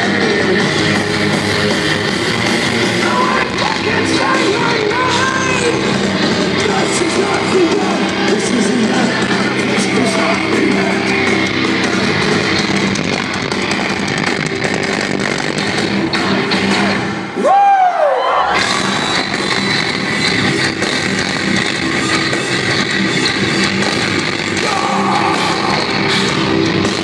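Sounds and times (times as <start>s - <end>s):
distorted electric guitars: 0.0s - 27.0s
drums: 0.0s - 27.0s.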